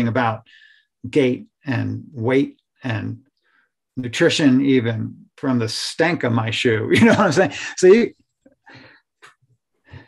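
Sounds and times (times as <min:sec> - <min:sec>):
man speaking: 0:00.0 - 0:03.2, 0:04.0 - 0:08.2
short breath: 0:08.7 - 0:09.1.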